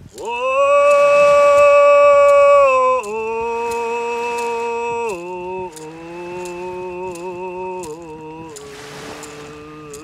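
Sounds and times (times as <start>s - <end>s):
man singing: 0.0s - 10.0s.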